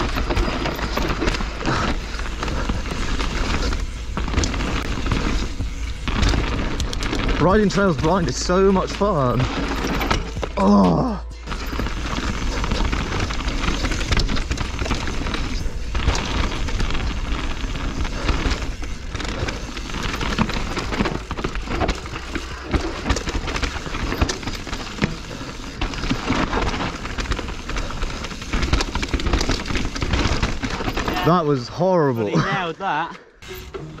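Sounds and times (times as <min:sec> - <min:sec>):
bike tyre and wind rush: 0:00.0 - 0:10.6, 0:11.5 - 0:31.6
bike rattling over stones: 0:00.0 - 0:32.8.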